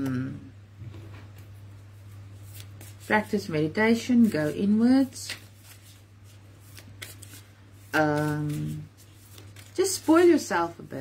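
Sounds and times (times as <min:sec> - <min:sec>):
low electrical hum: 0:00.0 - 0:11.0
cards shuffling: 0:02.4 - 0:03.4, 0:04.2 - 0:10.5.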